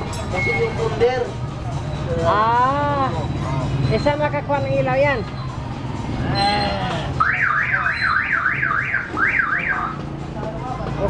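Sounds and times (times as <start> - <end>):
electronic siren alarm: 7.2 - 10.0.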